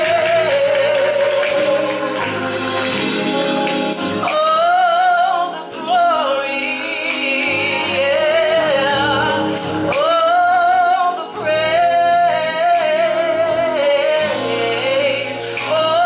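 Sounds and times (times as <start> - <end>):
gospel choir singing: 0.0 - 16.0.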